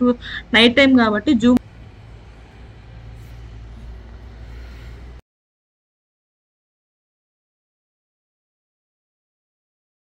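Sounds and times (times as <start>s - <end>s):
low outdoor rumble: 0.0s - 5.2s.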